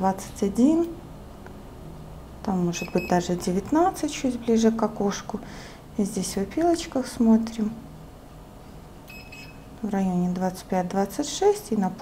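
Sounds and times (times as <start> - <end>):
high electronic beep: 9.1 - 9.7.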